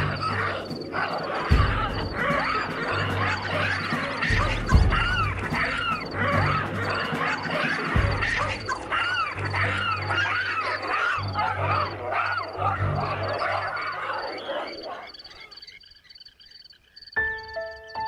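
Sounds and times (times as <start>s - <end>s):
background music: 0.0s - 14.2s, 17.2s - 18.0s
baboons screaming: 0.0s - 15.8s.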